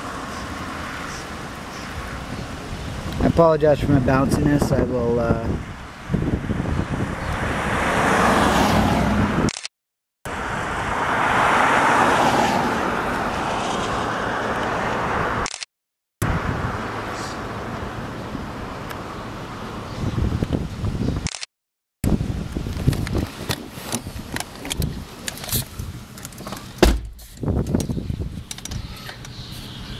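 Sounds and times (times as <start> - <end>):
road traffic passing: 0.0 - 9.7, 10.3 - 21.4, 22.1 - 29.9.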